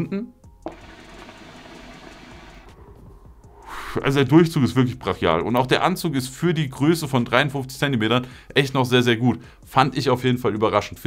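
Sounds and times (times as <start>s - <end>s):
hookah water bubbling: 0.6s - 3.0s.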